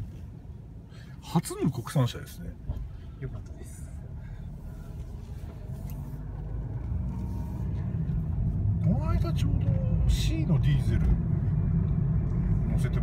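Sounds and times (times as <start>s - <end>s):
car engine rumble from inside cabin: 0.0s - 13.0s
road noise: 0.0s - 13.0s.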